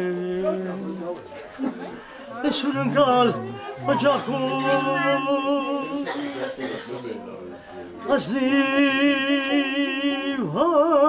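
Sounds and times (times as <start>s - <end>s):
man singing unaccompanied: 0.0s - 1.2s, 2.4s - 6.4s, 8.0s - 11.0s.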